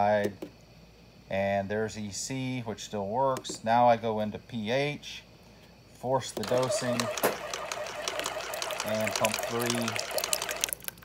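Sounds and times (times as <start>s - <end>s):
liquid trickling into plastic cup: 6.5s - 11.0s.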